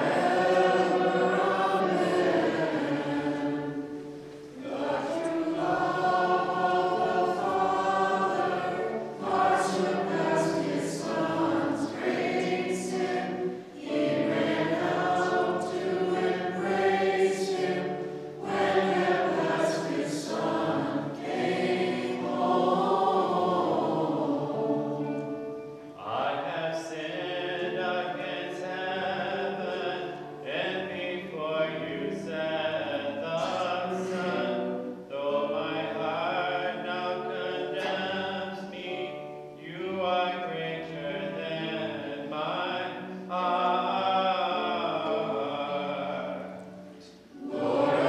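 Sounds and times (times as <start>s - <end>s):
voices singing a hymn: 0.0s - 48.0s.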